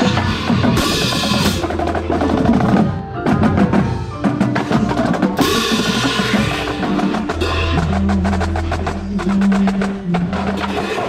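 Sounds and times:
marching drums playing: 0.0 - 11.0
pitched percussion notes: 0.0 - 11.0.

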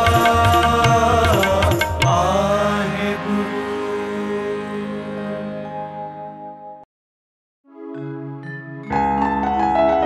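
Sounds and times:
harmoniums holding a chord: 2.2 - 6.7.

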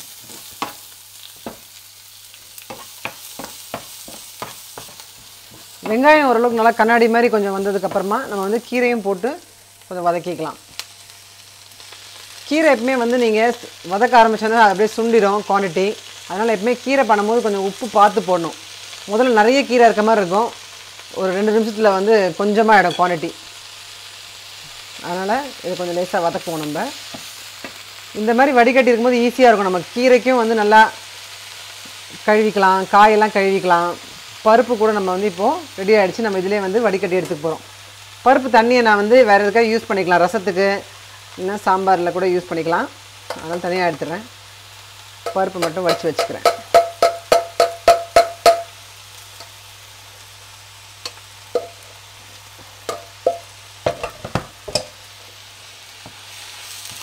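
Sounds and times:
onion sizzling in a pan: 0.0 - 57.0
woman talking: 5.8 - 10.6, 12.5 - 23.4, 25.0 - 27.0, 28.1 - 31.0, 32.2 - 37.6, 38.3 - 44.3, 45.3 - 46.6.

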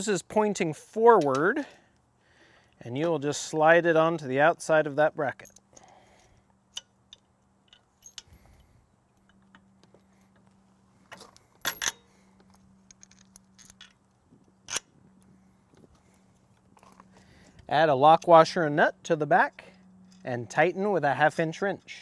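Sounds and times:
metal hardware clinking: 5.3 - 9.7, 11.1 - 14.0.

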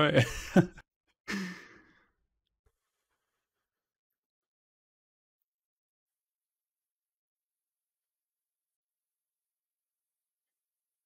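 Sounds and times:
man breathy exhale: 1.3 - 2.0.

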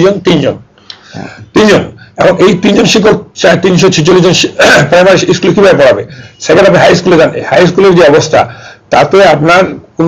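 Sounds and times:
man speaking: 0.0 - 10.0
man clearing throat: 4.6 - 5.0.

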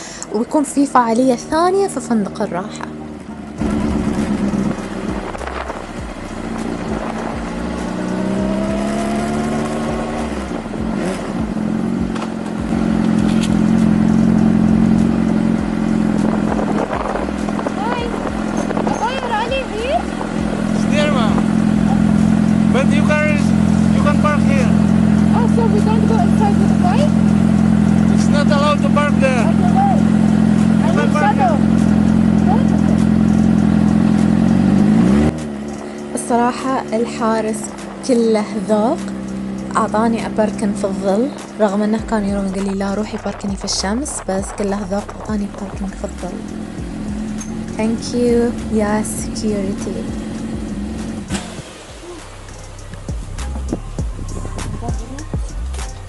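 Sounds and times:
motorcycle engine pulling away: 1.0 - 56.0.

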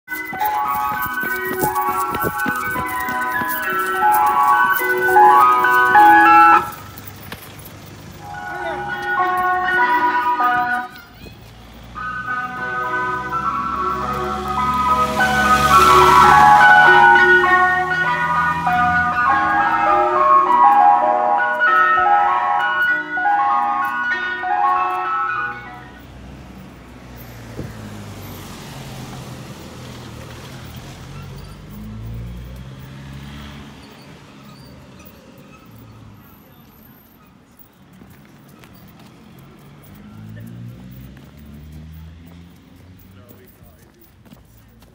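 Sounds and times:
ice cream van chimes: 0.1 - 38.0
low traffic noise: 0.1 - 44.9
car driving past: 11.6 - 20.8, 26.1 - 36.2, 39.4 - 43.4.

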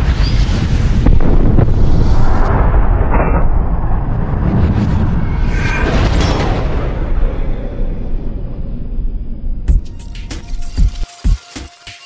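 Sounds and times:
explosion low rumble: 0.0 - 9.7.

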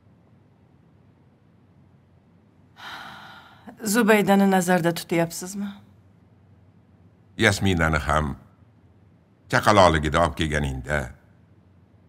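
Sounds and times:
woman's intake of breath: 2.8 - 3.7.

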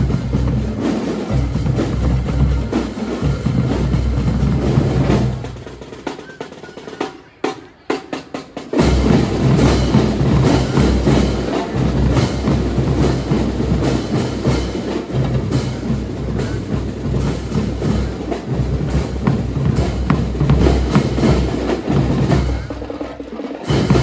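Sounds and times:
marching drum corps: 0.0 - 24.0.

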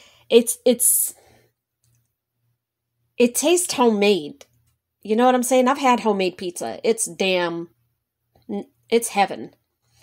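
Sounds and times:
short breath: 0.0 - 0.3
tiny faint clicks: 1.8 - 2.2.

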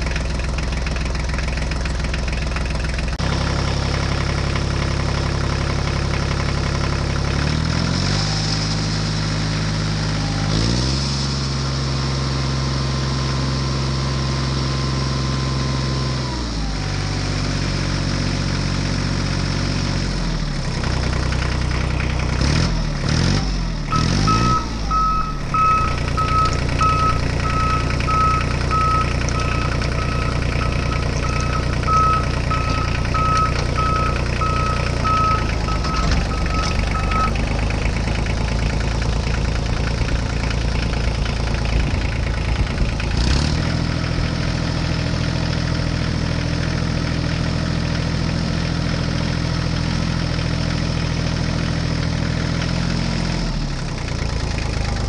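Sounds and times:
engine running: 0.0 - 55.0
reversing alarm beeps: 23.9 - 37.4.

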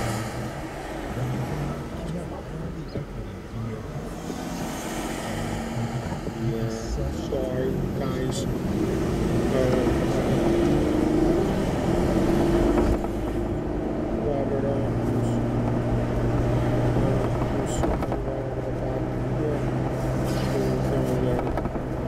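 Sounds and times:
road and engine noise: 0.0 - 22.0.

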